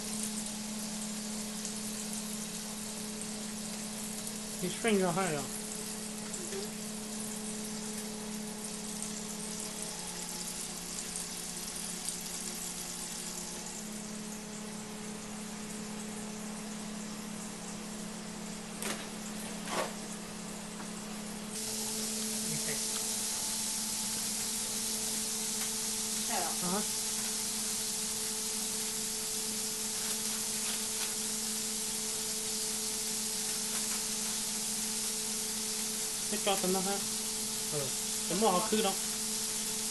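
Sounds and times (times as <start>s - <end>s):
patty sizzling on a griddle: 0.0s - 39.9s.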